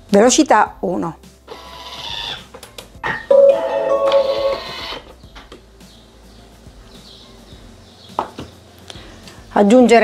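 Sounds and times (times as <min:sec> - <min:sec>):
held electronic chime: 0:03.2 - 0:04.6
food processor signal tones: 0:03.3 - 0:05.0.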